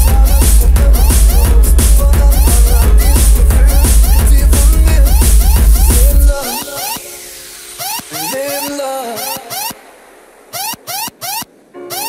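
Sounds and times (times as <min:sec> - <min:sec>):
electronic music synth stabs: 0:00.0 - 0:12.0.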